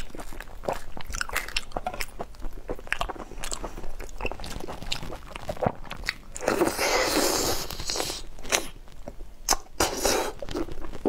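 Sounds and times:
biting and chewing: 0:00.0 - 0:08.7.

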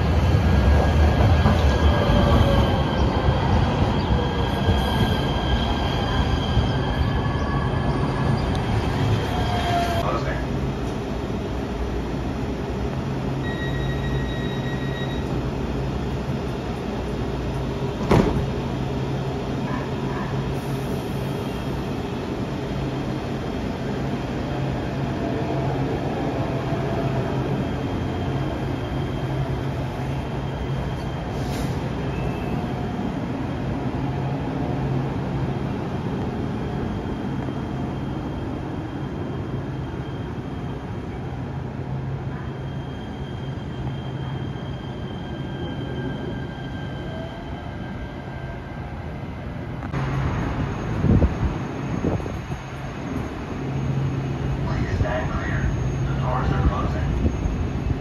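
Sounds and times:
train rolling noise: 0:00.0 - 0:58.0
high wheel squeal: 0:13.4 - 0:15.4, 0:42.2 - 0:48.3.

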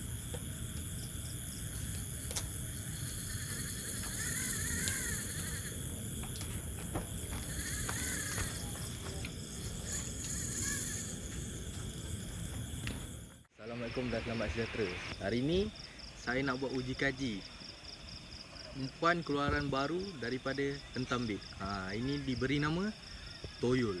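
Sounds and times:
crickets chirping: 0:00.0 - 0:24.0.

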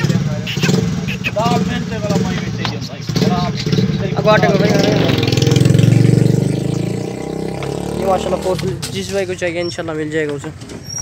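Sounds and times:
engine idling: 0:00.0 - 0:06.0
voices: 0:00.0 - 0:11.0.

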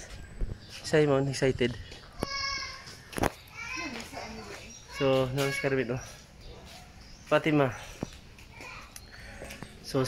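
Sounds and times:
child's voice at play: 0:02.2 - 0:06.0, 0:08.4 - 0:09.4.

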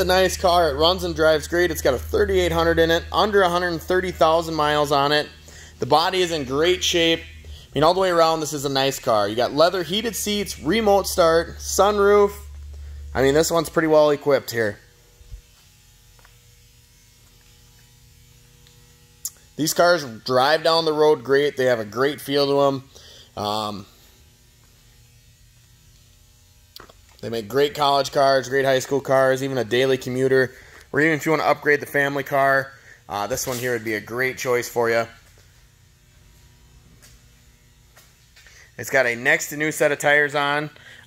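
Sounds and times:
faint electrical hum: 0:00.0 - 0:41.0.

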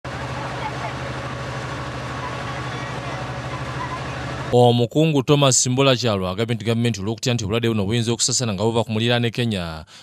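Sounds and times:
motor humming steadily: 0:00.0 - 0:04.6.

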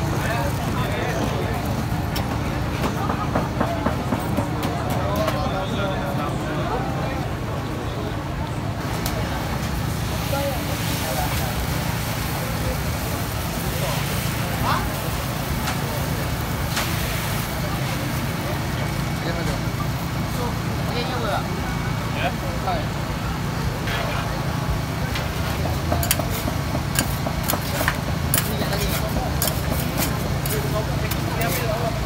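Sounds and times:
murmur of voices: 0:00.0 - 0:32.0
metal spatula scraping griddle: 0:26.0 - 0:31.9.

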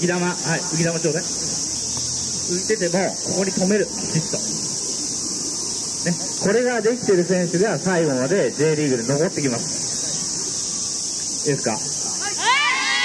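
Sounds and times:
cicadas singing: 0:00.0 - 0:13.0.

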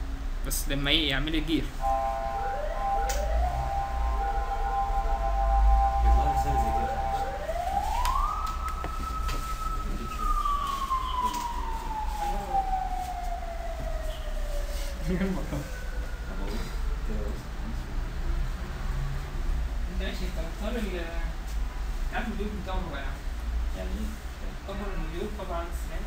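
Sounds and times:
several steady tones: 0:01.0 - 0:19.2
low hum: 0:01.8 - 0:14.4
wailing tone: 0:01.8 - 0:16.5.

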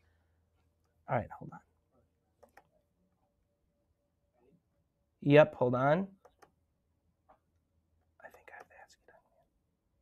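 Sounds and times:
faint whispering: 0:08.2 - 0:09.6.

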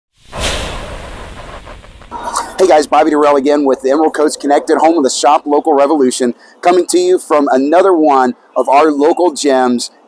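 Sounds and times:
whoosh sound effect: 0:00.2 - 0:04.5.

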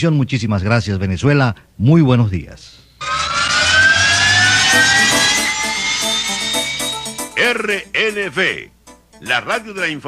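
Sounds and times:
jet-like whoosh with rising hiss: 0:03.0 - 0:07.4
musical notes: 0:04.1 - 0:08.0.

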